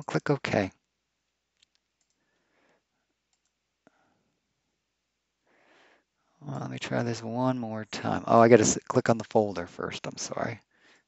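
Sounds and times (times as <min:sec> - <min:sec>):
computer mouse clicks: 0:01.6 - 0:02.4, 0:03.3 - 0:03.6.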